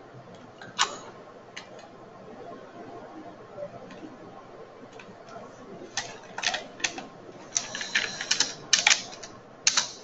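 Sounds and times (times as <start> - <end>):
keyboard keystrokes clicking: 4.9 - 10.0.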